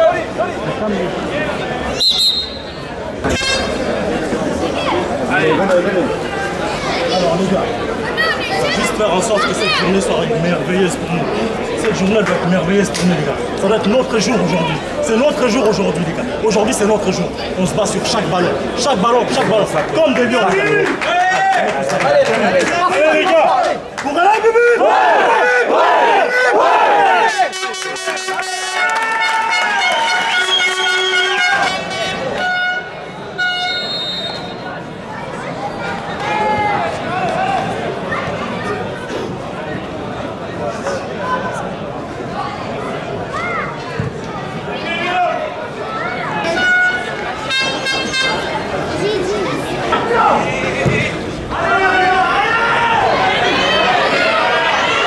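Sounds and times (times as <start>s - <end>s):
players and spectators shouting: 0.0s - 39.1s, 41.0s - 55.0s
background crowd noise: 0.0s - 55.0s
men shouting rallying cry: 24.4s - 27.6s.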